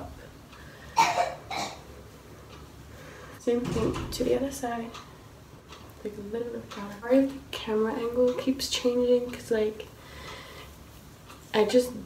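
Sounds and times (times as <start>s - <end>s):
woman cough-like vocal sound: 1.0s - 1.8s.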